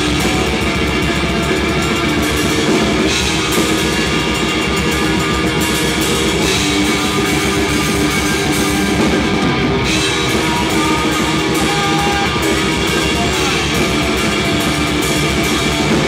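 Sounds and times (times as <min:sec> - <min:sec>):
drum kit with cymbals: 0:00.0 - 0:16.0
electric guitar through amplifier: 0:00.0 - 0:16.0.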